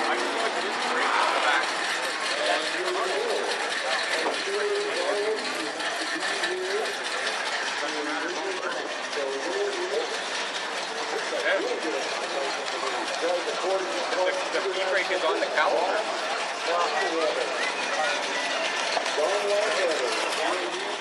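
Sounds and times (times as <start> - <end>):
indistinct chatter: 0.0 - 21.0
steady background noise: 0.0 - 21.0.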